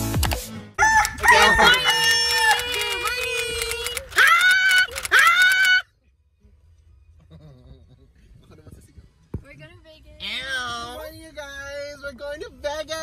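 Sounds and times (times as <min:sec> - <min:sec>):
young women squealing: 0:04.0 - 0:05.8.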